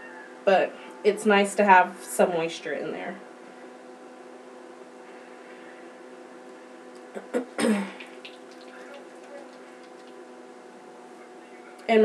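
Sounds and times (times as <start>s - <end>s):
faint background hum: 0.0s - 12.0s
woman sneezing: 7.2s - 8.0s.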